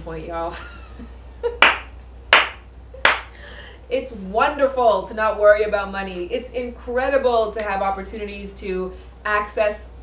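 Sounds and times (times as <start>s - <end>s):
sharp hand claps: 1.6s - 3.4s.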